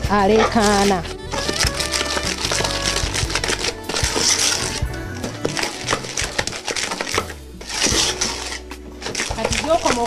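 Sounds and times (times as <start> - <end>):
background music: 0.0 - 10.0
wooden spoon beating in metal bowl: 0.0 - 10.0.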